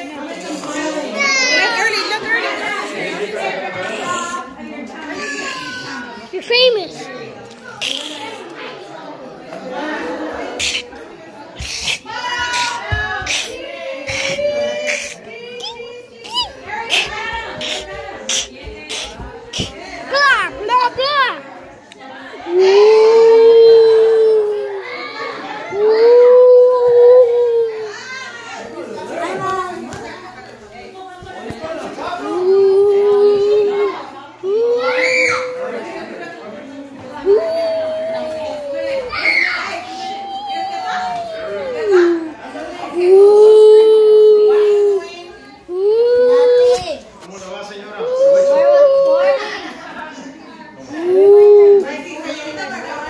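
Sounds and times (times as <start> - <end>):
children chattering: 0.0 - 53.0.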